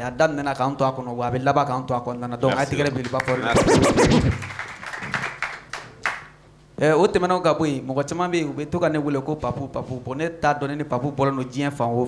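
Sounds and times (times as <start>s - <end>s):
studio audience applauding: 2.7s - 6.4s.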